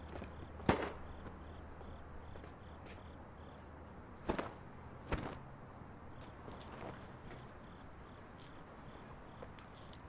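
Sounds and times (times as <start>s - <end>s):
faint crickets chirping: 0.0s - 10.0s
soft ticks: 8.4s - 10.0s.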